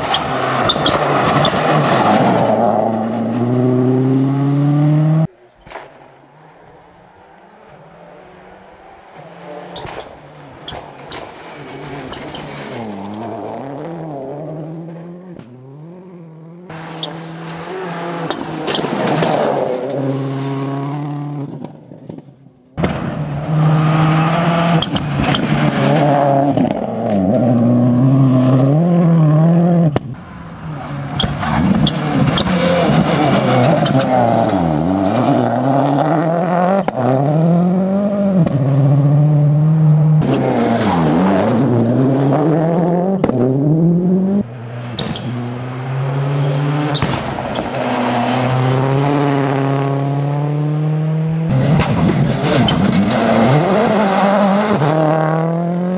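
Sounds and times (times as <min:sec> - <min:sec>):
rally car engine revving: 0:00.0 - 0:22.2, 0:22.8 - 0:55.9.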